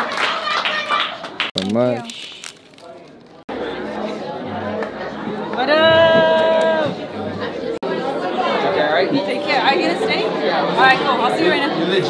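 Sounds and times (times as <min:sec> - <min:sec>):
audience clapping: 0:00.0 - 0:01.8.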